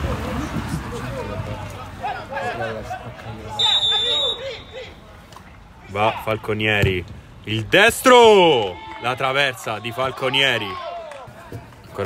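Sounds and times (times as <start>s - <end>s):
players calling out: 0.0s - 12.0s
referee's whistle blast: 3.5s - 4.9s.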